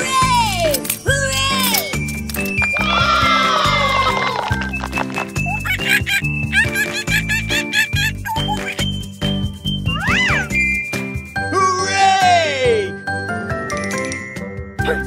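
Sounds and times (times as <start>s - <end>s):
upbeat children's music: 0.0s - 15.0s.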